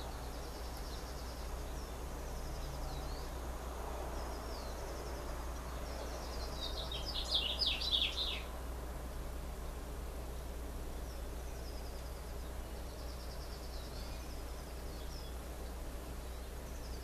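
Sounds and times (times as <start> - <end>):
birds chirping: 0.0 - 8.5, 9.6 - 17.0
steady low hum: 0.0 - 17.0
rapid falling bird chirps: 4.4 - 8.5.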